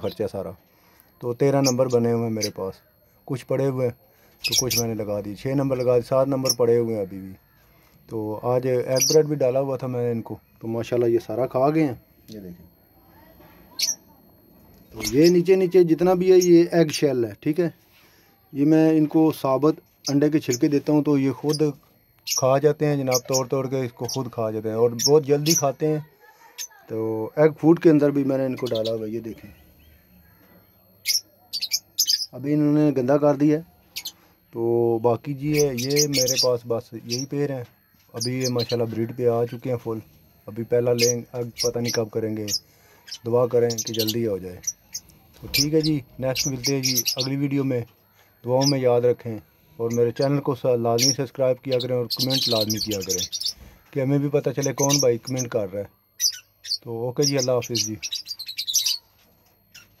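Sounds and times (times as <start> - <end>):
budgerigars chirping: 4.2 - 7.6, 8.9 - 9.6, 28.4 - 32.6, 35.4 - 40.0, 40.6 - 59.1.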